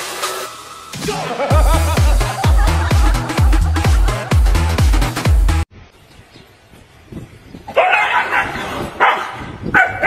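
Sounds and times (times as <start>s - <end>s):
dog barking: 7.7s - 10.0s.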